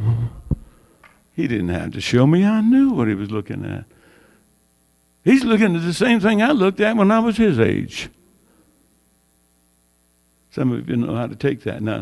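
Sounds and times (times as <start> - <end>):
electrical mains hum: 0.0 - 12.0
man speaking: 1.4 - 3.9, 5.3 - 8.2, 10.6 - 12.0.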